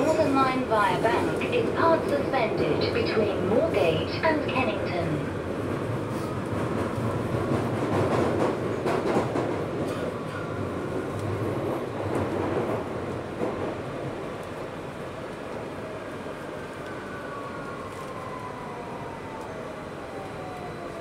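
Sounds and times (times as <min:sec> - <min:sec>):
train wheels rumbling and rattling: 0:00.0 - 0:15.8.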